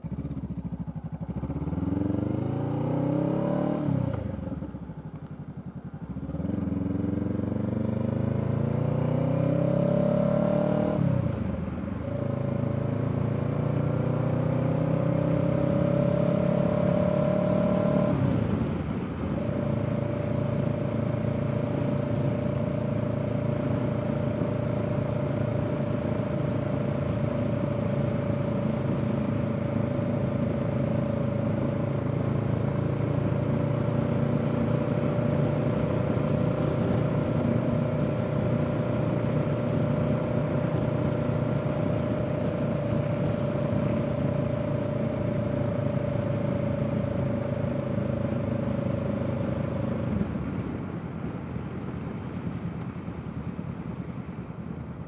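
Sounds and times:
motorcycle engine cruising: 0.0s - 55.0s.

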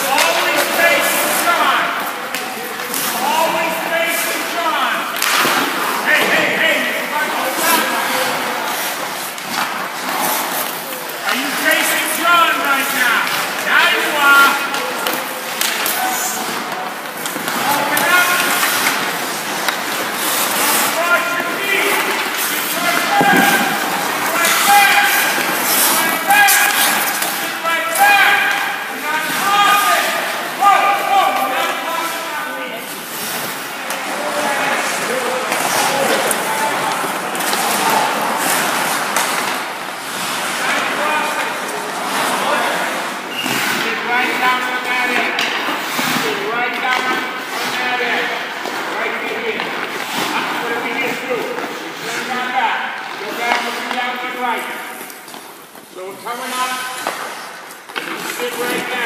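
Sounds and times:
indistinct voices: 0.0s - 54.8s
skates scraping on ice: 0.0s - 59.0s
sticks and pucks clacking: 0.0s - 59.0s.

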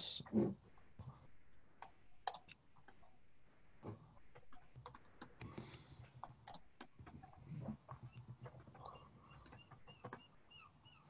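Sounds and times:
keyboard typing: 1.8s - 3.2s, 4.2s - 10.6s.

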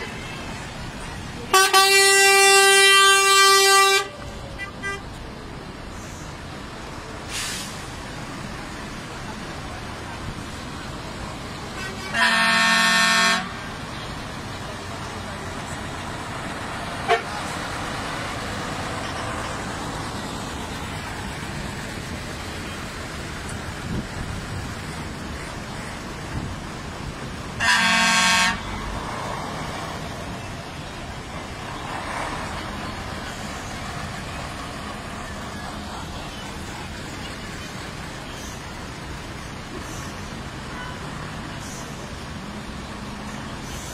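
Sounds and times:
truck engines rumbling: 0.0s - 43.9s
truck horn blowing: 1.5s - 5.1s, 11.8s - 13.6s, 17.0s - 17.4s, 27.6s - 28.8s.

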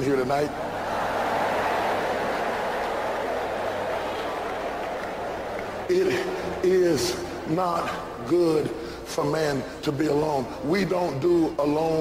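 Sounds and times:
crowd chatter in a large hall: 0.0s - 12.0s.

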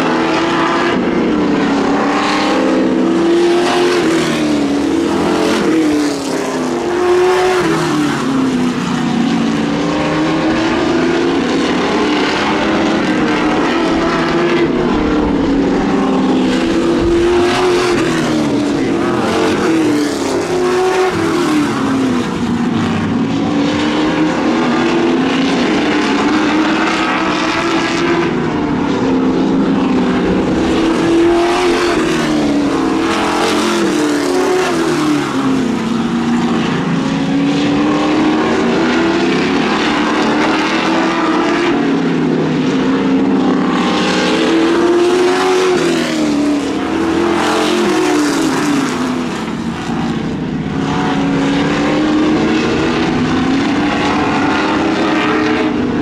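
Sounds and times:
race car engines: 0.0s - 56.0s.

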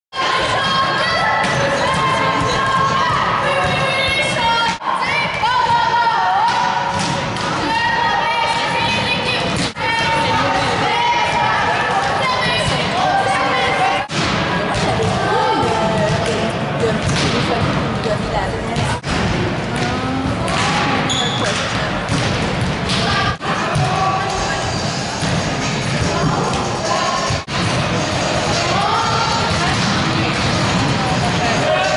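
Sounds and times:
players shouting in gymnasium: 0.1s - 17.3s, 25.6s - 31.9s
volleyballs struck and bouncing: 0.4s - 13.3s, 14.0s - 24.4s, 25.1s - 31.9s.

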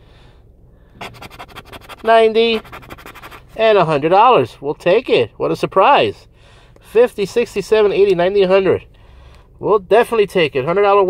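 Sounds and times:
card scraping scratch-off ticket: 1.0s - 3.5s.

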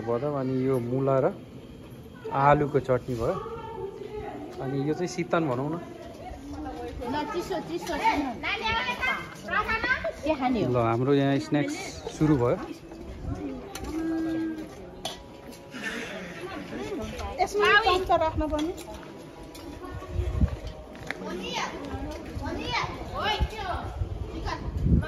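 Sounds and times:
children calling out and chattering: 0.0s - 25.0s.

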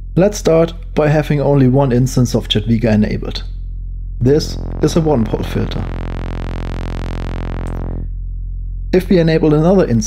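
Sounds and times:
buzzy sawtooth synth tone: 3.5s - 9.1s.

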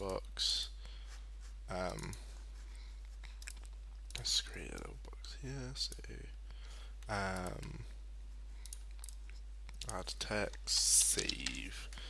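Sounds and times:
steady low hum: 0.0s - 12.0s
computer mouse clicks: 1.8s - 2.2s, 3.2s - 5.1s, 7.0s - 7.8s, 8.6s - 12.0s.

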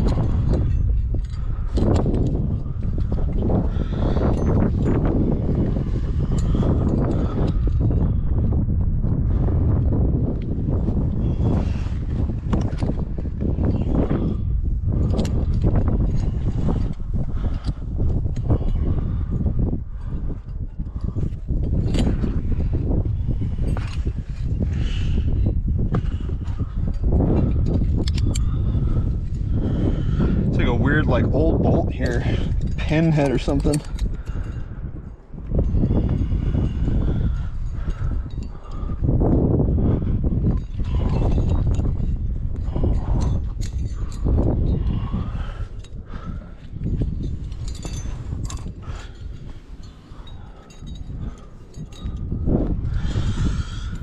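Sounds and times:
clicks and scrapes of climbing gear: 0.0s - 8.6s, 9.7s - 30.8s, 31.5s - 54.0s
wind rumble on microphone: 0.0s - 54.0s.

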